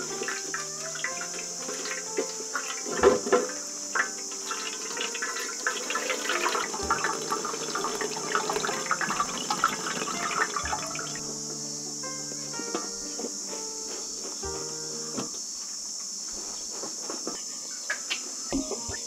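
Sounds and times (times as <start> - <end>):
liquid splashing: 0.0 - 11.2
liquid trickling and dripping: 0.0 - 11.2.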